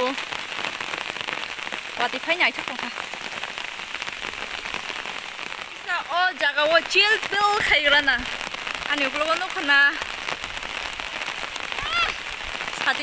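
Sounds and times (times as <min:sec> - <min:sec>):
steady rain falling: 0:00.0 - 0:13.0.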